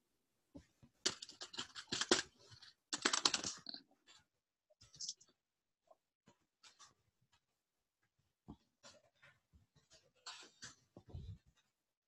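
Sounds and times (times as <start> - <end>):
typing on computer keyboard: 1.0 - 3.8.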